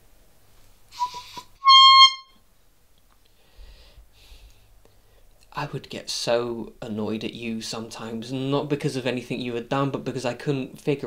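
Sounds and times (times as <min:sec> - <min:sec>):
handheld horn honking: 0:01.0 - 0:02.4.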